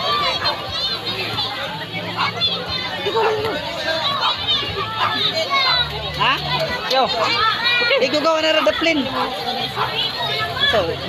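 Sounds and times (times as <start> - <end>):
distant children shouting: 0.0 - 11.0.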